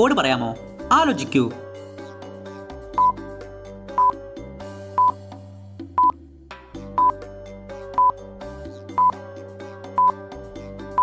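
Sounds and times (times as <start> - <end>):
background music: 0.0 - 11.0
high electronic timer beeps: 3.0 - 3.2, 3.9 - 4.2, 5.0 - 5.2, 6.0 - 6.2, 9.0 - 9.2.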